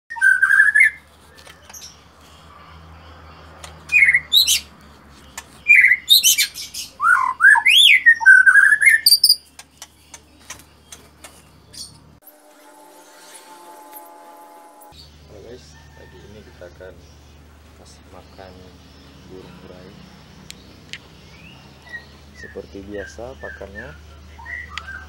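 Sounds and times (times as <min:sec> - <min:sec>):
bird singing whistled phrases: 0:00.1 - 0:01.9, 0:05.7 - 0:09.4, 0:21.3 - 0:25.0.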